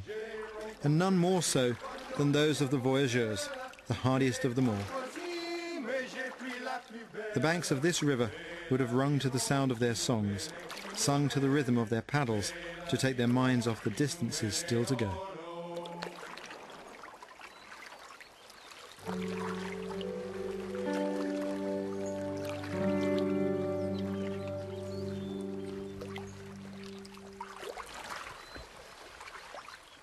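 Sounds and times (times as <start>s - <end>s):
paddle splashing in water: 1.5s - 7.0s, 10.5s - 11.1s, 15.7s - 30.0s
music of long held chords: 19.0s - 27.8s.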